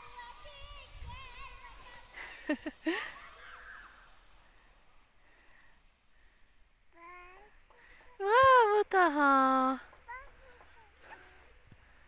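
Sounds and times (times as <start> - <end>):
quiet outdoor ambience: 0.0 - 12.0.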